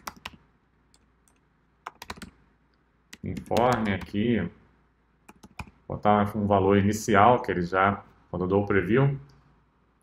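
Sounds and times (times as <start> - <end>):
keystrokes on computer keyboard: 0.0 - 2.4, 3.1 - 4.2, 5.3 - 5.8.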